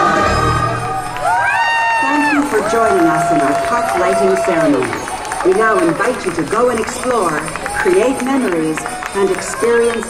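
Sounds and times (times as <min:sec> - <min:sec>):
choir holding a chord: 0:00.0 - 0:01.1
announcer speaking: 0:02.0 - 0:10.0.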